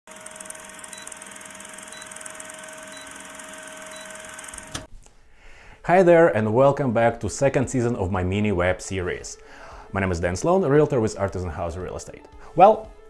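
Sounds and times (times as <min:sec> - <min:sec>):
projector whir: 0:00.1 - 0:04.9
man's voice: 0:05.8 - 0:12.9.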